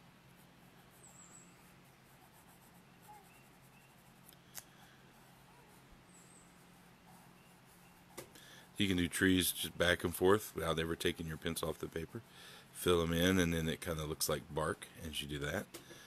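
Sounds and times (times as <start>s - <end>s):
low steady hum: 0.0s - 16.0s
pencil scratching on paper: 0.3s - 4.3s, 5.1s - 13.1s.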